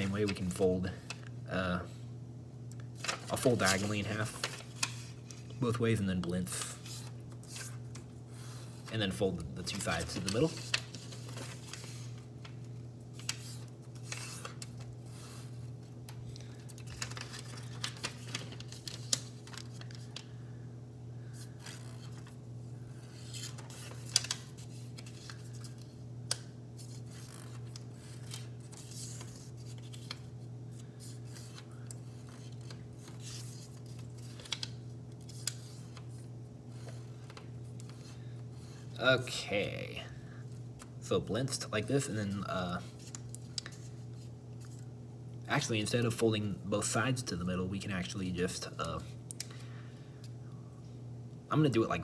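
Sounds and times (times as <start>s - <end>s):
paper rustling and crackling: 0.0s - 1.3s, 2.8s - 20.4s, 21.2s - 38.9s, 42.2s - 44.9s
steady low hum: 0.0s - 52.0s.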